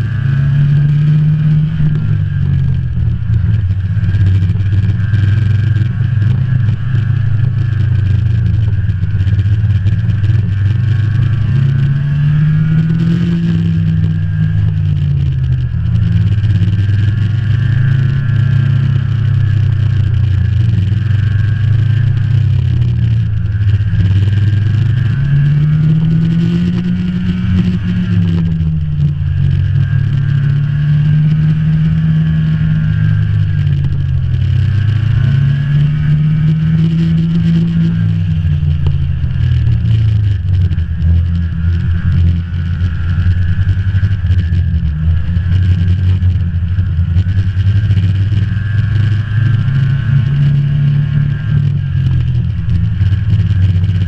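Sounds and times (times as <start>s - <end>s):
snowmobile engine running: 0.0s - 54.0s.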